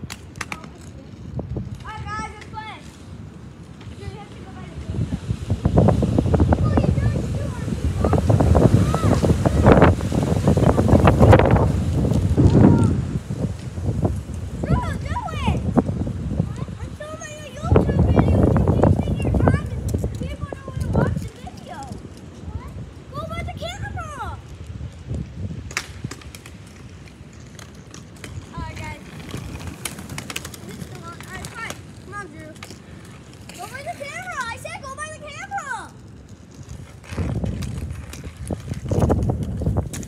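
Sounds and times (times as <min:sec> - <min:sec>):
hockey sticks clacking on pavement: 0:00.0 - 0:05.0, 0:16.5 - 0:40.0
wind buffeting microphone: 0:00.0 - 0:40.0
children calling out: 0:06.4 - 0:11.2, 0:14.6 - 0:15.6.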